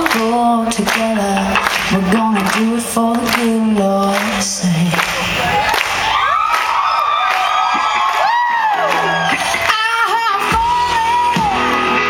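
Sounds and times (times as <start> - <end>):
crowd whooping and yelling: 4.9 - 12.0
live band music: 9.1 - 12.0.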